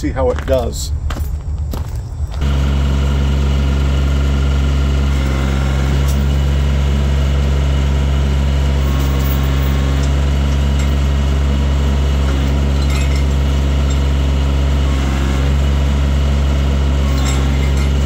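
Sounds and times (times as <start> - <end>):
hydraulics lifting mower: 0.0 - 18.0
tractor diesel engine running: 0.0 - 18.0.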